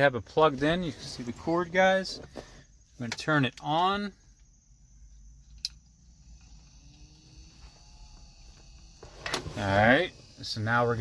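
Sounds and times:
car fan running with whine: 0.0s - 11.0s.

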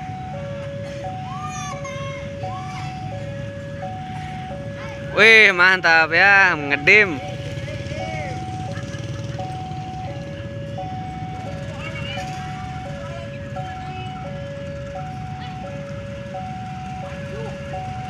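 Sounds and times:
level crossing two-tone alarm: 0.0s - 18.0s
low engine rumble: 0.0s - 18.0s.

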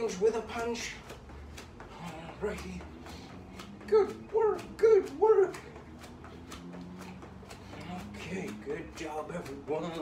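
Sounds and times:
feet thudding on floor: 0.0s - 10.0s.

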